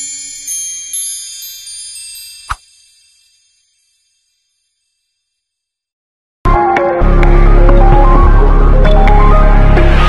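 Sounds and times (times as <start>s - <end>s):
shimmering bell-like chimes: 0.0s - 5.8s
theme music: 6.5s - 10.0s.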